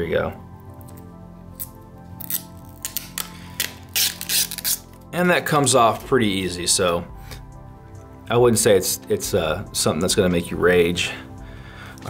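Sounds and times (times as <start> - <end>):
plastic film peeling off: 1.6 - 5.1.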